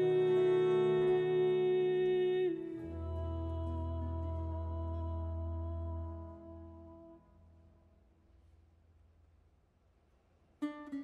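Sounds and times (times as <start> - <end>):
ensemble held chord: 0.0 - 7.6.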